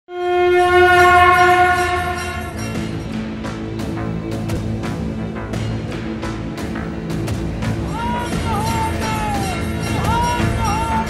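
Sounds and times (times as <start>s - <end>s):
sustained horn-like tone: 0.1s - 3.1s
music with sharp percussive hits: 0.9s - 11.0s.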